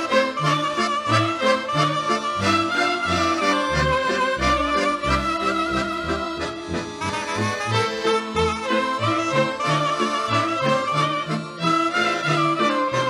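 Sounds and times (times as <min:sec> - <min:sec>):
folk orchestra playing: 0:00.0 - 0:13.0
bass line: 0:02.4 - 0:09.4.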